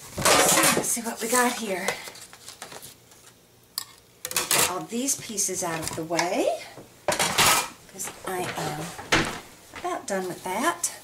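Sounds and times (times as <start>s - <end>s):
cardstock rustling: 7.9s - 10.6s.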